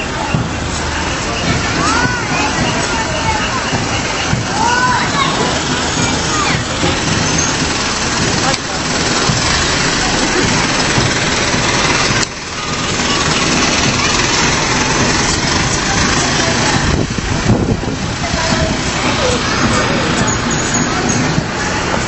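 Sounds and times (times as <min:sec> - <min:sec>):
fire truck engine driving past: 0:00.0 - 0:22.0
loud street noise: 0:00.0 - 0:22.0.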